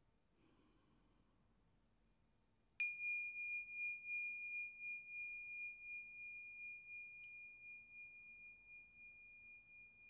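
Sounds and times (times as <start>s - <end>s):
tingsha cymbals ringing: 2.8s - 10.0s.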